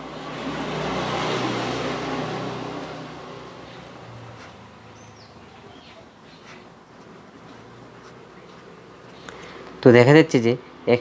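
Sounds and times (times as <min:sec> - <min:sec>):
passing vehicle rushing: 0:00.0 - 0:09.1.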